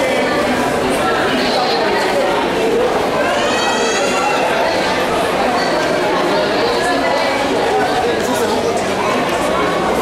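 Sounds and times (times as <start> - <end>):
crowd chatter in a large hall: 0.0 - 10.0.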